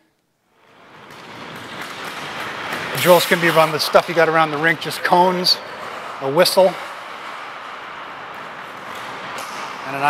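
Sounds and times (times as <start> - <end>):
skate blades scraping ice: 0.6 - 10.0.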